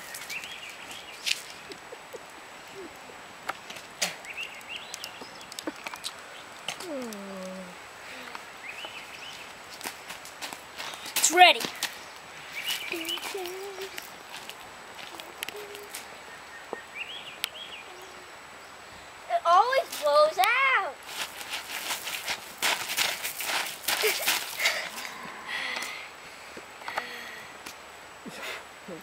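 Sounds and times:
footsteps on gravel: 0:08.8 - 0:16.1, 0:19.7 - 0:25.5.

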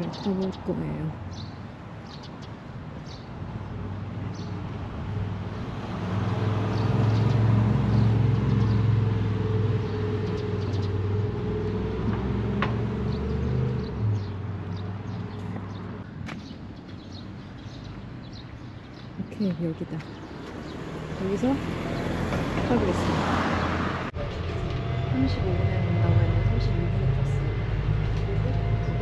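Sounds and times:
vehicle engine passing: 0:04.4 - 0:16.0, 0:19.6 - 0:29.0.

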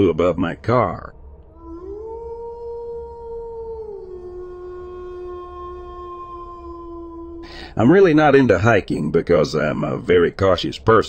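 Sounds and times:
long gliding howl: 0:00.7 - 0:09.0.

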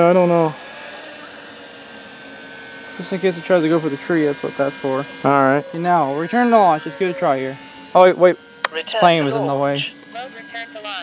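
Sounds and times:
quadcopter hovering: 0:00.0 - 0:11.0.

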